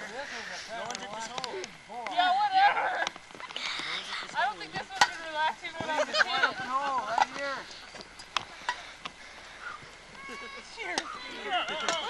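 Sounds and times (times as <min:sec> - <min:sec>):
people shouting and calling out: 0:00.0 - 0:07.8, 0:09.8 - 0:12.0.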